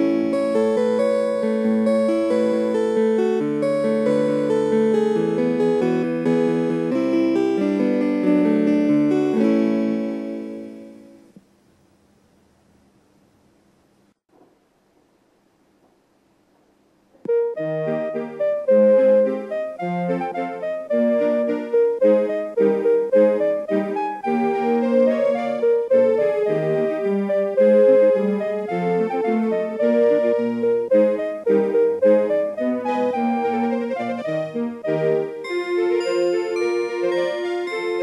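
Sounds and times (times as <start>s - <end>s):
electronic clock chime melody: 35.4s - 38.0s.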